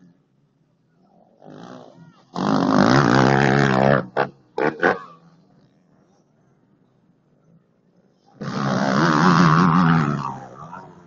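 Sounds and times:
motocross bike engine revving past: 1.2 - 5.8, 8.3 - 11.0.

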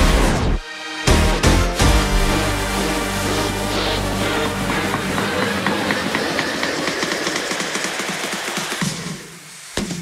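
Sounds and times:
hissing music with rapid ticks: 0.0 - 10.0.

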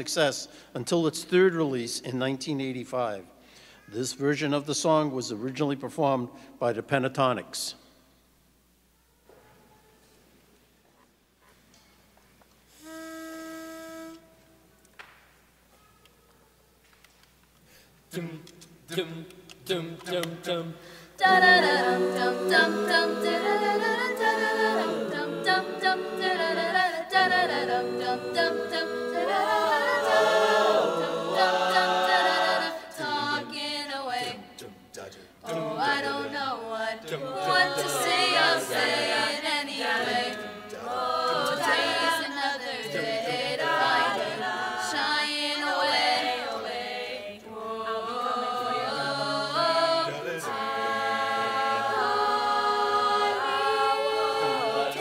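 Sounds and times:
choir singing a cappella: 18.1 - 55.0.

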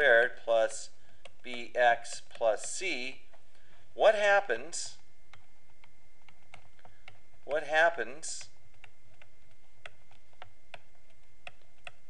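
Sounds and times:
background hum: 0.0 - 12.0
thin high whine: 0.0 - 12.0
stylus tapping on pen tablet: 1.1 - 3.8, 5.3 - 7.6, 8.4 - 12.0.

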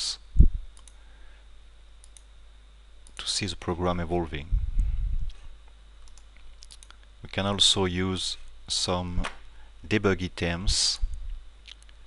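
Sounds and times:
computer mouse clicks: 0.8 - 1.0, 2.0 - 2.3, 6.0 - 7.1.

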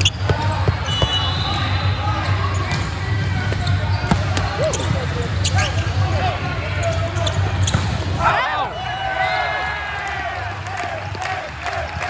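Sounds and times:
volleyball hits and bounces: 0.0 - 1.8, 2.6 - 5.1.

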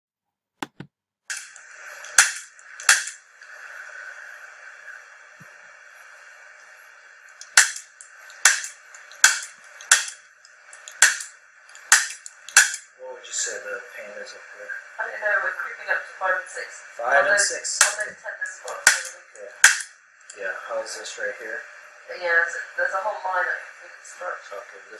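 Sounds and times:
faint hiss: 1.3 - 24.9.

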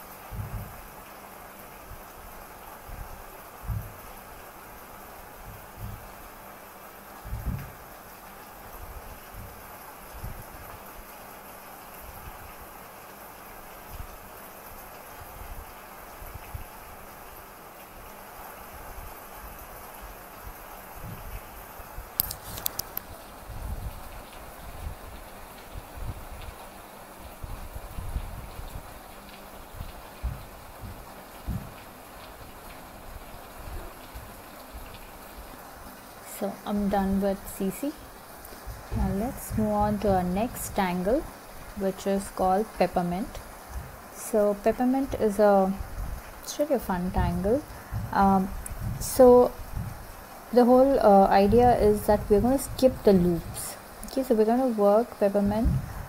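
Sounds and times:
steady hiss: 0.0 - 56.0.

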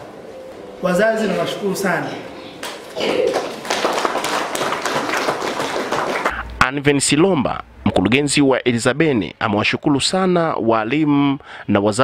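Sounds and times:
audience applauding: 2.6 - 6.4.

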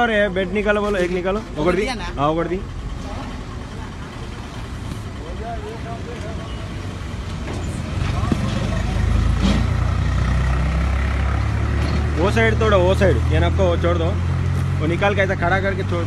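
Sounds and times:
vehicle engine running: 0.0 - 16.0.

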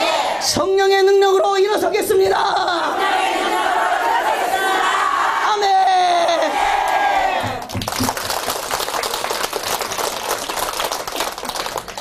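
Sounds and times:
crowd shouting: 0.0 - 0.4, 2.8 - 7.6
audience clapping: 6.8 - 12.0.

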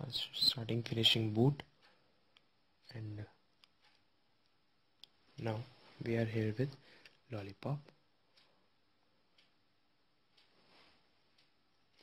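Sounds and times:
man speaking: 0.0 - 1.7, 2.9 - 3.4, 5.4 - 8.0.

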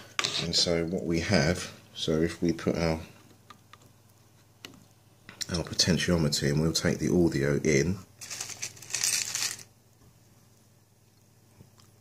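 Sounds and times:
rustling scraping handling noise: 8.2 - 9.7.

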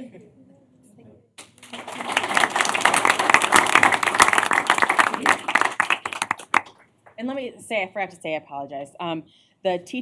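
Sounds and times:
crowd applauding: 1.6 - 6.8.

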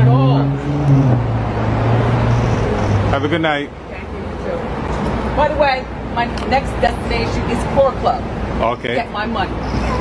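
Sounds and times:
engine hum: 0.0 - 10.0
road noise: 0.0 - 10.0.

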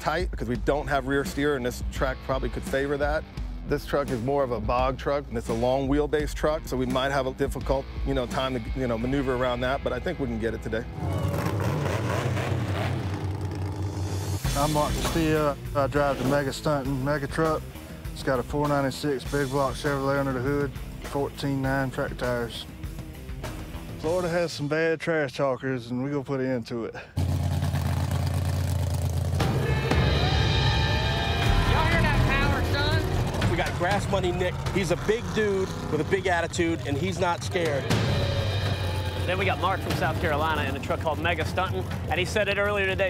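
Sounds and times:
truck engine rumbling: 8.6 - 18.6, 27.0 - 43.0.

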